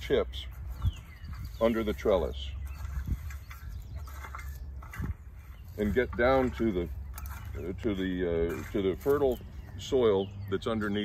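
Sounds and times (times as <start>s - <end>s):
rake scraping through wood chips: 0.0s - 11.0s.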